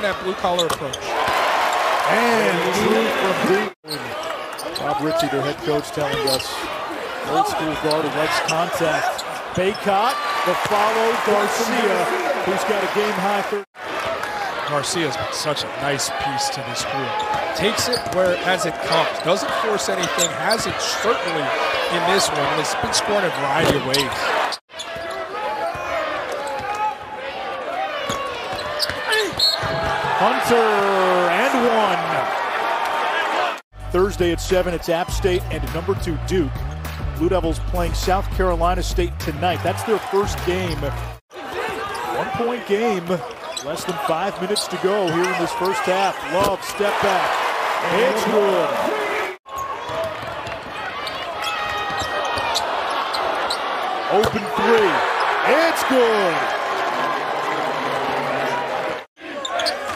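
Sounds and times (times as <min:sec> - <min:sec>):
crowd noise: 0:00.0 - 0:59.9
sneakers squeaking on court: 0:00.4 - 0:01.1, 0:03.9 - 0:06.6, 0:17.2 - 0:20.7, 0:23.3 - 0:26.8, 0:28.1 - 0:29.9, 0:41.7 - 0:42.4, 0:43.2 - 0:45.8, 0:49.5 - 0:54.4, 0:59.4 - 0:59.9
people shouting: 0:45.2 - 0:59.9.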